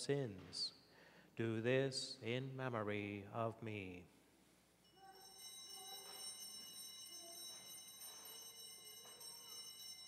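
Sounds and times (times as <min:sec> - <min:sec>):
altar bells ringing: 0:04.8 - 0:10.0.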